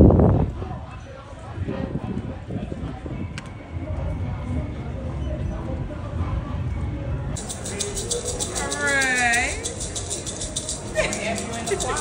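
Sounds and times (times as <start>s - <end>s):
maraca shaken: 7.4s - 12.0s.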